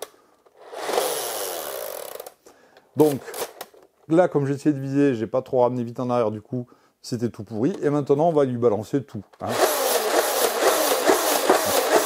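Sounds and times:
toy blaster flywheel whir: 0:00.6 - 0:02.3, 0:09.4 - 0:12.0.

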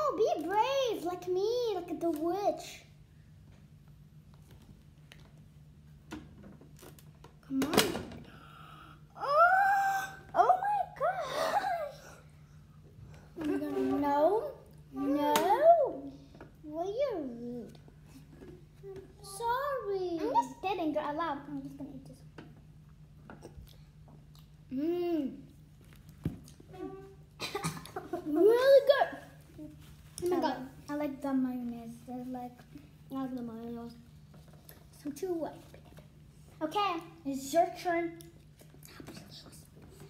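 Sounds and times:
child squealing: 0:09.2 - 0:10.6
child coughing: 0:27.4 - 0:28.0.

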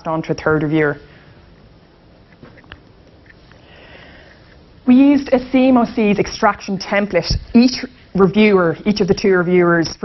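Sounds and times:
person breathing in: 0:03.6 - 0:04.6
person speaking: 0:04.8 - 0:10.0.

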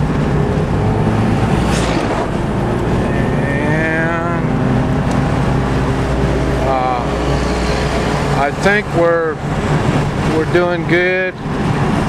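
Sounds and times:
car engine hum and road noise: 0:00.0 - 0:12.0
trucks passing: 0:00.0 - 0:12.0.

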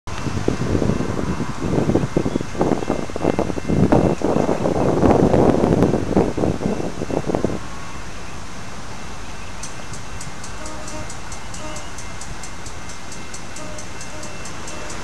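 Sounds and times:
wind buffeting microphone: 0:00.1 - 0:07.9.

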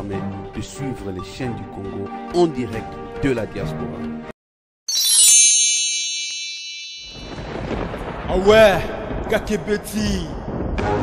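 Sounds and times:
rising and falling pitched tone: 0:04.9 - 0:07.5
low thunder-like rumble: 0:07.3 - 0:10.8.

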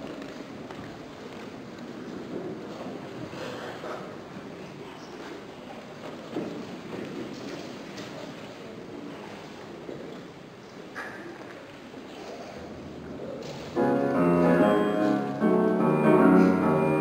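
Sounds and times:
faint murmur and shuffling: 0:00.0 - 0:17.0.

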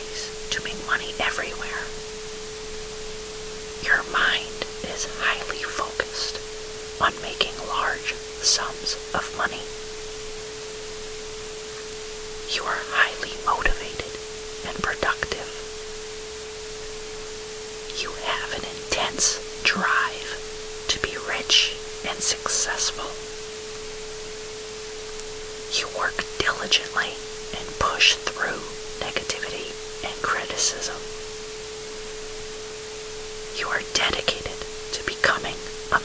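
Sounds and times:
person whispering: 0:00.0 - 0:02.0, 0:03.8 - 0:06.4, 0:07.0 - 0:09.7, 0:12.5 - 0:15.7, 0:17.9 - 0:23.2, 0:25.7 - 0:31.1, 0:33.6 - 0:36.0
constant noise hiss: 0:00.0 - 0:36.0.

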